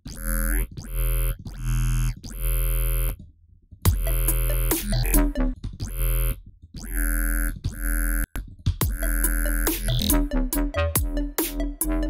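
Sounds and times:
screechy synth bass notes: 0:00.0 - 0:03.2, 0:03.9 - 0:12.0.

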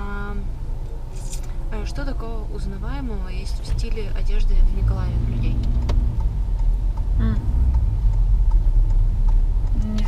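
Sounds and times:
road and engine rumble in car: 0:00.0 - 0:10.0
faint regular ticking: 0:03.5 - 0:10.0.

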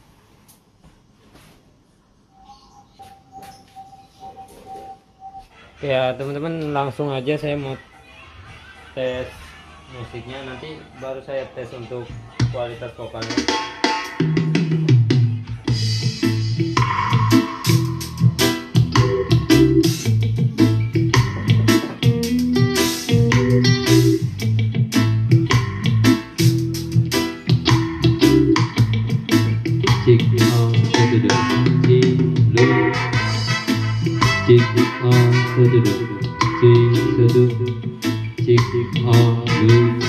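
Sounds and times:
loud music through portable speaker: 0:13.2 - 0:40.0.

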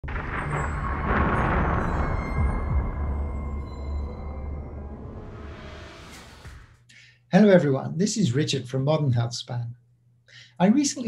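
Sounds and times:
dark cinematic music: 0:00.0 - 0:06.8
loud rushing swell: 0:00.0 - 0:06.8
steady low rumble: 0:00.0 - 0:06.8.

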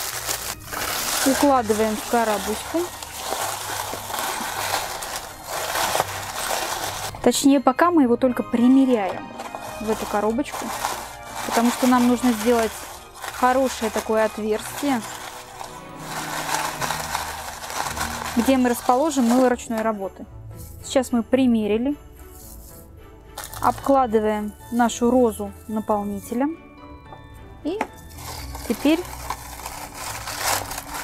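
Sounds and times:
shredded paper rustling: 0:00.0 - 0:07.1, 0:09.2 - 0:19.7, 0:23.4 - 0:23.9, 0:28.1 - 0:31.0
cardboard box handled: 0:00.1 - 0:07.1, 0:09.1 - 0:19.5.

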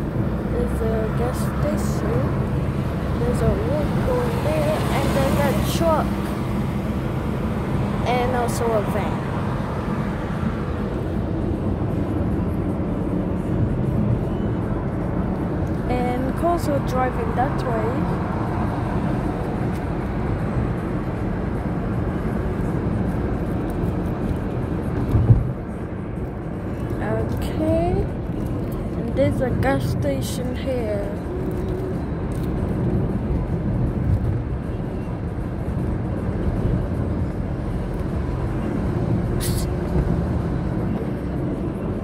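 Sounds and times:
car engine rumble from inside: 0:00.0 - 0:42.0.

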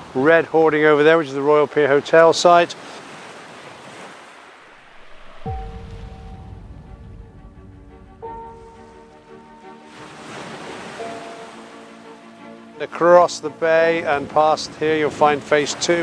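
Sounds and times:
surf: 0:00.0 - 0:16.0
sustained chord music: 0:04.9 - 0:15.3.

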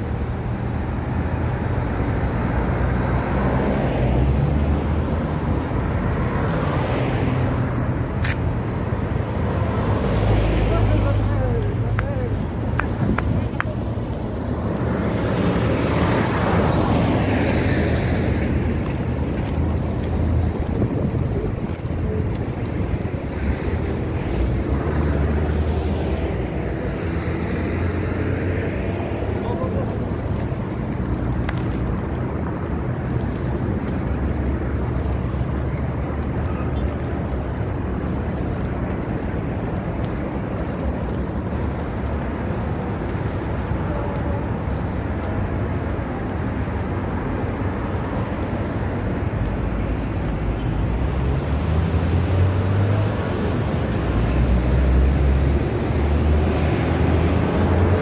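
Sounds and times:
road noise: 0:00.0 - 0:58.0
vehicles passing: 0:00.0 - 0:58.0
wind buffeting microphone: 0:11.7 - 0:51.5.

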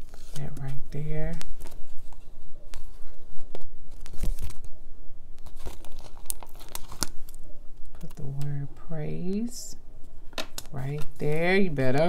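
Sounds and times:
sticker sheet crinkling: 0:00.0 - 0:04.7, 0:05.4 - 0:08.6, 0:10.3 - 0:12.0.

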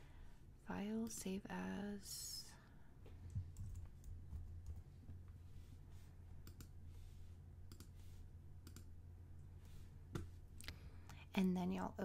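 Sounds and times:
low steady hum: 0:00.0 - 0:12.0
keyboard typing: 0:03.5 - 0:04.8, 0:06.4 - 0:06.8, 0:07.7 - 0:08.0, 0:08.6 - 0:08.9
mouse clicks: 0:06.4 - 0:06.8, 0:07.7 - 0:08.0, 0:08.6 - 0:08.9.

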